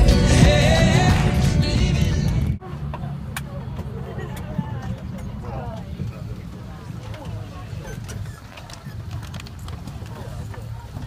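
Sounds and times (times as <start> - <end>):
passengers chattering: 0.0 - 11.0.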